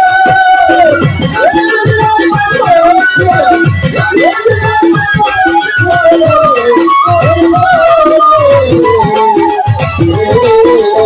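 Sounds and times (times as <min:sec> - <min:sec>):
drum keeping steady beat: 0:00.2 - 0:09.2.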